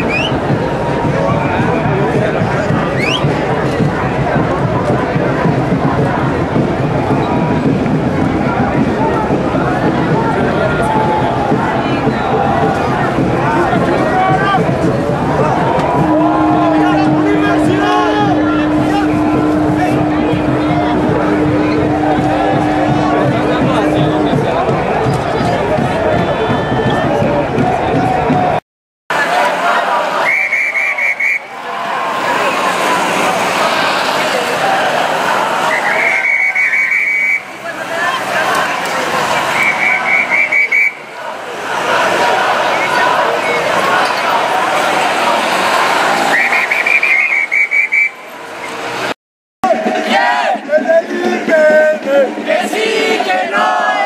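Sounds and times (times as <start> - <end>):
whistle short blasts: 0.0 - 0.4, 3.0 - 3.3, 30.2 - 31.5, 35.6 - 37.5, 39.6 - 41.1, 46.3 - 48.2
crowd shouting and talking: 0.0 - 54.0
steady droning tone: 15.4 - 25.3.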